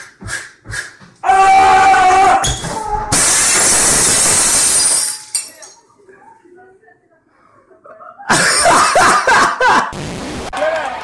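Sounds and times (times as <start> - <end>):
loud noisy crash: 3.1 - 4.8.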